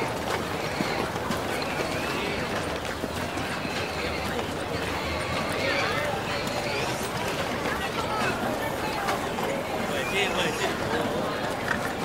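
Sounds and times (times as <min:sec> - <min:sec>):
chatter of passing voices: 0:00.0 - 0:12.0
horse hooves clip-clopping: 0:00.0 - 0:12.0.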